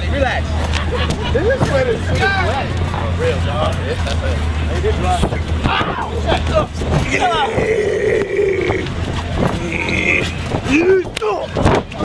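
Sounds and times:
person shouting: 7.0s - 8.9s.

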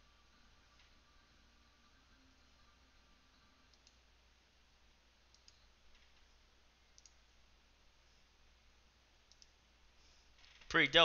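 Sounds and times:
low steady hum: 0.0s - 11.0s
computer mouse clicks: 3.7s - 4.0s, 5.3s - 6.3s, 6.9s - 7.2s, 9.2s - 9.6s.

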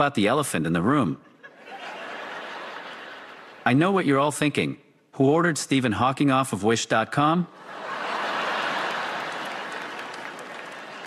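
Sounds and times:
audience laughing: 1.2s - 3.7s, 7.6s - 11.0s
audience applauding: 7.8s - 11.0s.

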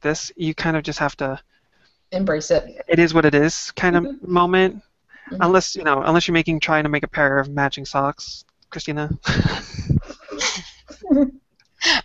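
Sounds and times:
person laughing breathily: 9.1s - 11.2s.

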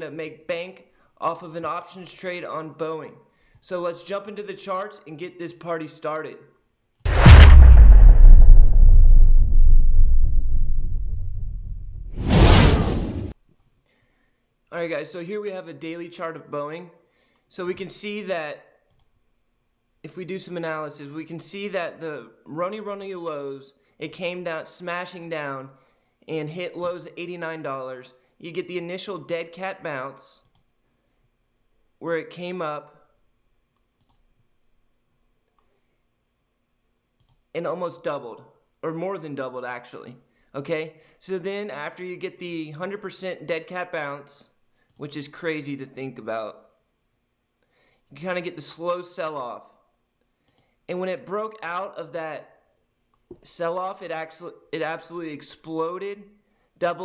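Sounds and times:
deep cinematic boom: 7.1s - 13.3s.

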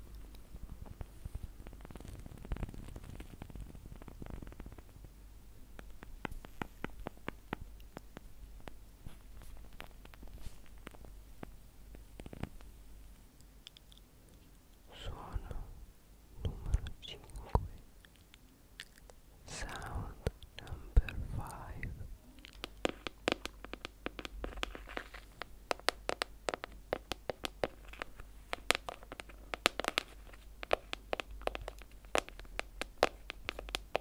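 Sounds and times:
quick sharp taps: 22.6s - 34.0s
rustling or scraping object: 24.4s - 25.4s.

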